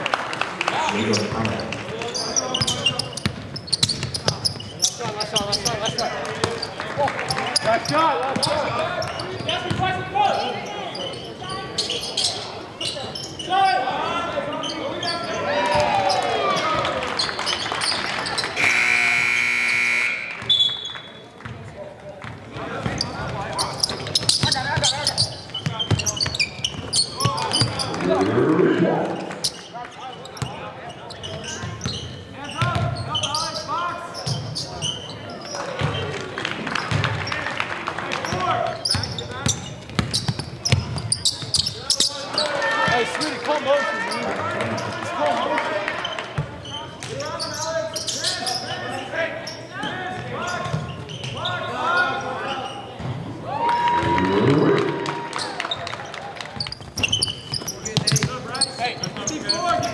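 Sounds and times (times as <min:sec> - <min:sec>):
players and crowd voices: 0:00.0 - 0:59.9
sneaker squeaks: 0:01.0 - 0:18.8, 0:19.4 - 0:21.3, 0:22.2 - 0:28.1, 0:29.2 - 0:36.1, 0:38.3 - 0:43.4, 0:46.0 - 0:53.3, 0:55.3 - 0:59.9
scoreboard buzzer: 0:18.6 - 0:20.4.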